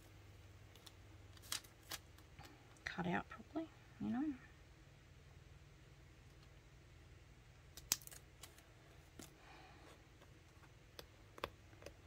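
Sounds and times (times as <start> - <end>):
paper crinkling clicks: 0.7 - 2.6, 7.7 - 9.3.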